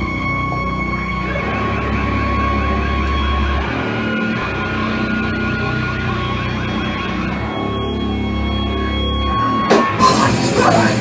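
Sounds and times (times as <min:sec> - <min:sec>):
guitar feedback tones: 0:00.0 - 0:11.0
live band playing distorted: 0:00.0 - 0:11.0.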